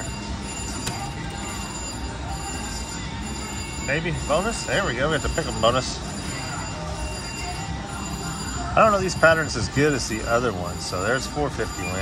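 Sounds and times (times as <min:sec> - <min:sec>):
slot machine electronic chimes: 0:00.0 - 0:12.0.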